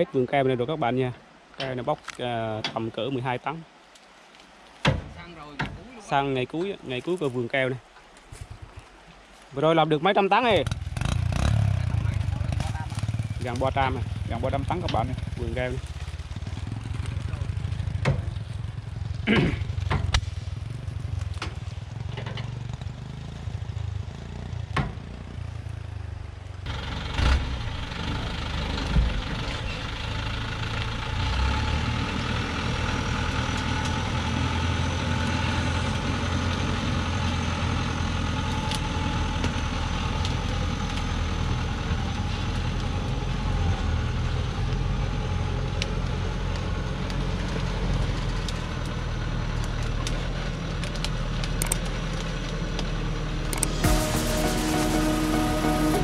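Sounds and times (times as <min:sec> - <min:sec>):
truck diesel engine running: 0:10.6 - 0:56.0.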